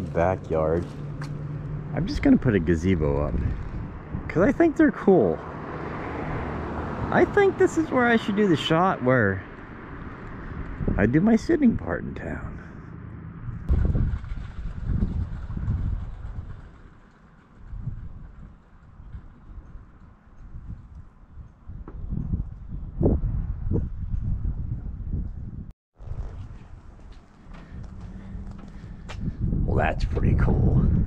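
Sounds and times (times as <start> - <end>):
wind buffeting microphone: 0.0 - 12.5, 13.4 - 31.0.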